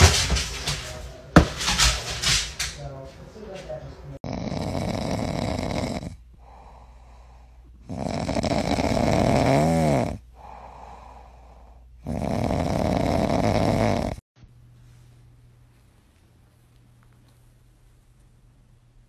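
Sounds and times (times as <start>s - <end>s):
dog snoring: 4.2s - 14.2s
dog breathing: 4.3s - 9.3s, 10.2s - 13.8s.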